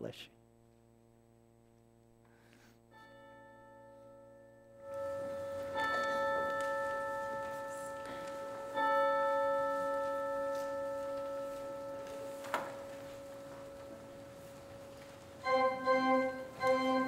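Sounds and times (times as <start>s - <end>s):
bell-like note ringing: 2.9s - 17.0s.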